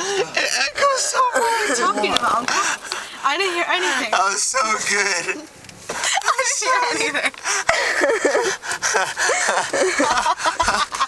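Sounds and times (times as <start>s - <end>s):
people laughing: 0.0s - 3.0s, 3.8s - 11.0s.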